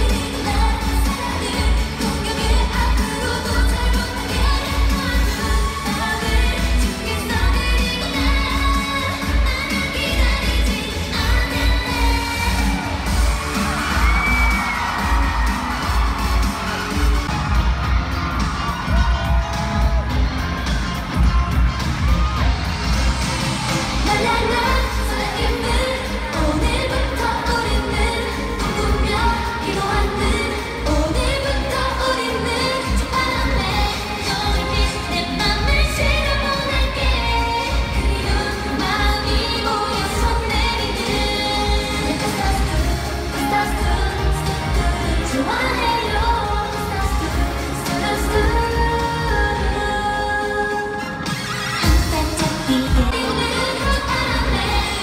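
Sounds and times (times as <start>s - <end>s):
women singing over pop backing track: 0.0s - 55.0s.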